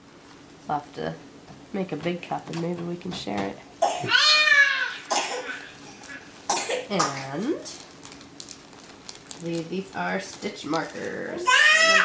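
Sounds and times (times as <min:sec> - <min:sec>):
person coughing: 0:05.1 - 0:05.6, 0:06.5 - 0:07.4.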